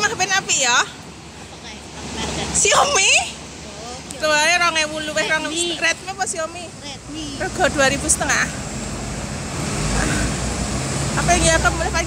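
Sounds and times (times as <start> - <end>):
people's voices: 0.0 - 8.7, 9.9 - 10.5, 11.1 - 12.0
bus engine rumbling: 0.0 - 12.0
street traffic: 0.0 - 12.0.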